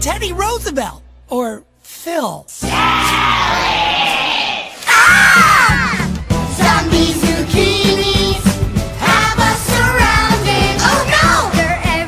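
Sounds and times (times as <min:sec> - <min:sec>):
cartoon voices yelling: 0:02.6 - 0:06.0.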